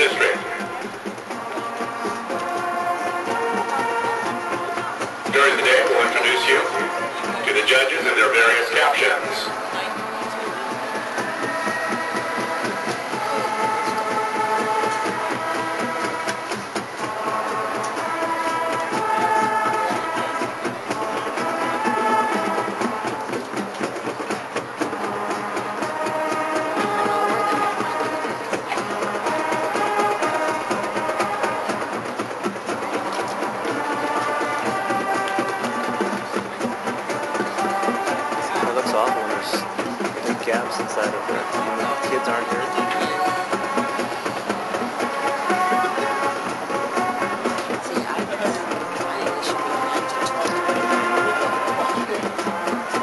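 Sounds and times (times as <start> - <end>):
drum strikes: 0.0 - 53.0
marching band brass chords: 0.0 - 53.0.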